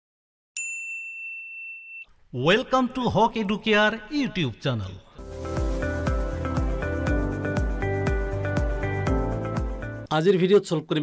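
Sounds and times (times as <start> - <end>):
high bell-like chime: 0.6 - 2.1.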